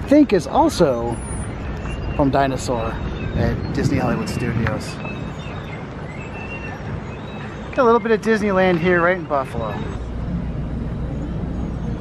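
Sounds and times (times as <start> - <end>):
car rumbling at low speed: 8.5 - 12.0.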